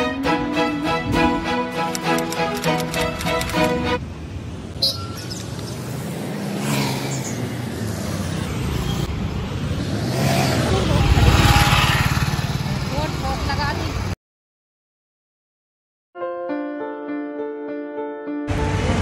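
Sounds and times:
passing vehicles: 0:00.0 - 0:14.2.

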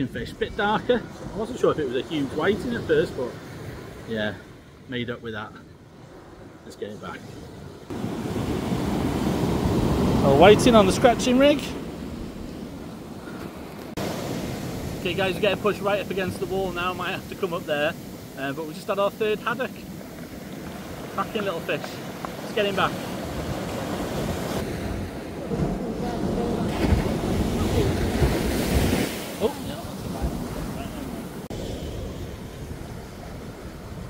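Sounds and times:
surf breaking on beach: 0:07.9 - 0:34.0
wind on microphone: 0:23.0 - 0:34.0.

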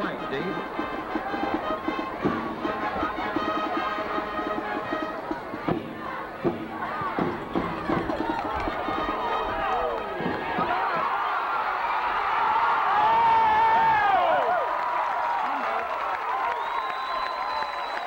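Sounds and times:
band music with brass and drums: 0:00.0 - 0:11.0
stadium crowd shouting and cheering: 0:00.0 - 0:18.0.

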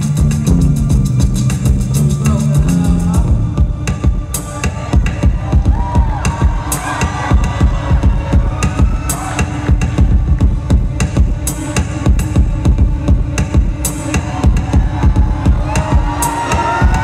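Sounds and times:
live electronic music: 0:00.0 - 0:17.0.

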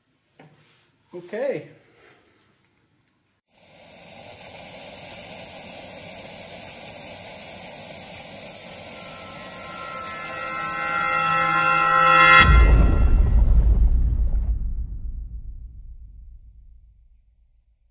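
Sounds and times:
sustained tones: 0:08.5 - 0:13.5
deep ringing boom: 0:09.3 - 0:17.4.

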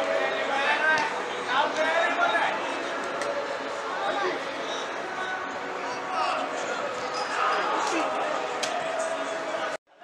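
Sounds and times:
players shouting and chattering: 0:00.0 - 0:09.8.

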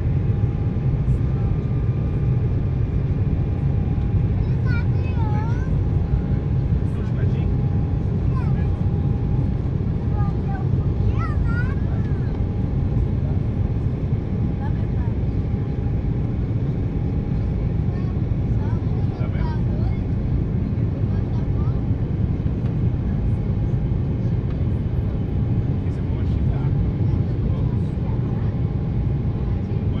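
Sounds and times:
airplane cabin roar: 0:00.0 - 0:30.0.

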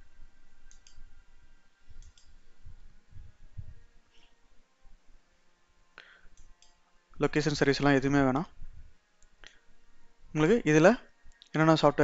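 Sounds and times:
faint click: 0:00.7 - 0:01.0, 0:02.0 - 0:02.4
man narrating: 0:07.2 - 0:08.6, 0:10.4 - 0:12.0.

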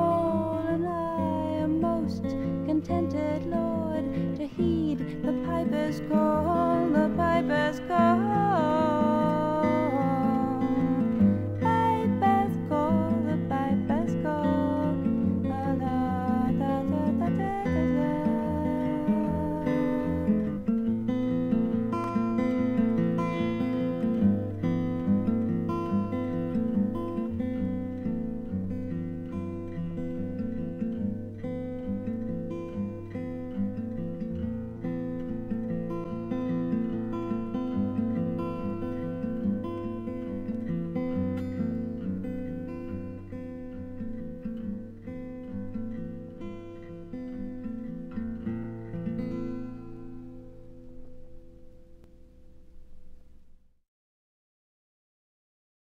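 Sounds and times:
acoustic guitar picking and strumming: 0:00.0 - 0:53.6.

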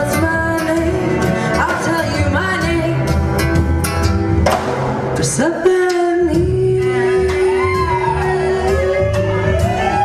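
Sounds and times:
woman singing into a microphone: 0:00.0 - 0:03.2, 0:05.2 - 0:10.0
live band with drums and bass: 0:00.0 - 0:10.0.

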